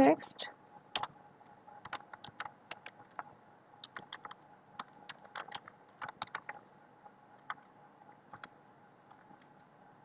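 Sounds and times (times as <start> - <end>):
keyboard typing: 0.9 - 6.6, 7.4 - 7.7, 8.3 - 9.7.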